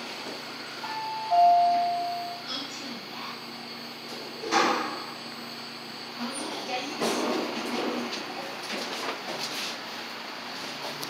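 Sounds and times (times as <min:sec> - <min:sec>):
elevator arrival chime: 0:00.8 - 0:02.5.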